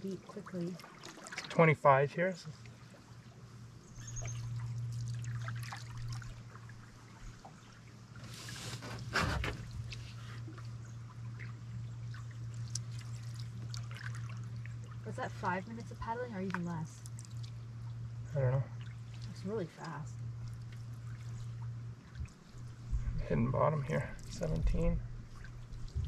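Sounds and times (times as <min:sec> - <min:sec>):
low hum: 0:00.0 - 0:26.0
canoe paddle strokes in water: 0:02.6 - 0:18.0, 0:18.8 - 0:23.3, 0:24.2 - 0:26.0
water dripping off paddle: 0:04.1 - 0:07.6, 0:10.5 - 0:18.0
paddle swish: 0:08.2 - 0:10.6.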